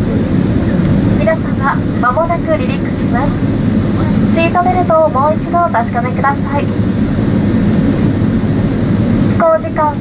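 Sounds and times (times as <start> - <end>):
jet cabin engine rumble: 0.0 - 10.0.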